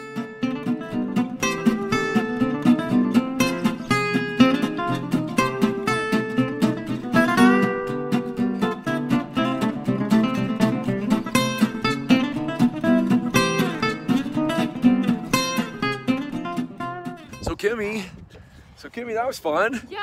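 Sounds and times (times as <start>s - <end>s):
strummed acoustic guitar chords: 0.0s - 17.5s.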